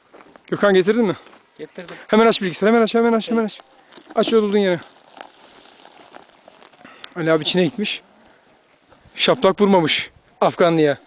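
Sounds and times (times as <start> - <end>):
rustling on dry grass: 0.0 - 9.9
cloth bag handling: 3.8 - 6.8.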